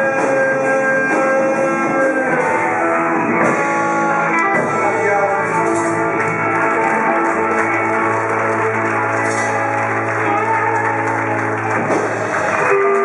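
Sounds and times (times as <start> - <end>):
rock band sustaining chord: 0.0 - 13.0
audience applause: 5.0 - 13.0.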